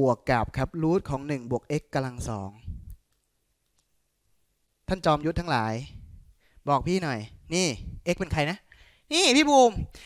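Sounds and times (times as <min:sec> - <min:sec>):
man's voice: 0:00.0 - 0:02.9, 0:04.9 - 0:10.0.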